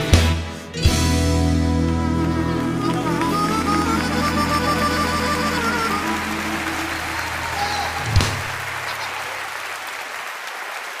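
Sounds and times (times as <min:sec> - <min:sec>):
audience applauding: 0:01.8 - 0:11.0
loud low thump: 0:08.0 - 0:08.8.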